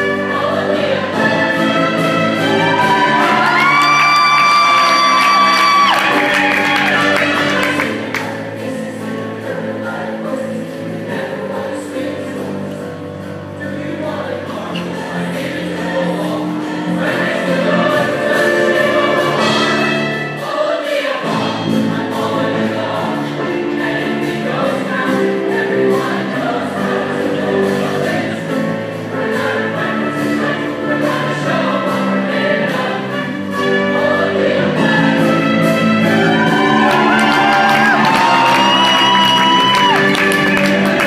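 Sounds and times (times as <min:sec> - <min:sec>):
live pit band: 0:00.0 - 0:08.6, 0:14.5 - 0:41.0
choir singing: 0:00.0 - 0:41.0.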